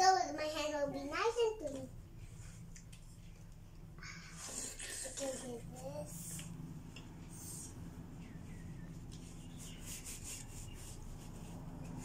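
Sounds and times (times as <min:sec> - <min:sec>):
tissue paper rubbing and crumpling: 0:09.1 - 0:12.0.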